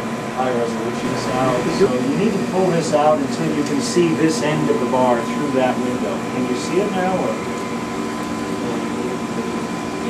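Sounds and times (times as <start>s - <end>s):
machinery hum: 0.0s - 10.0s
high whining tones: 0.9s - 3.4s.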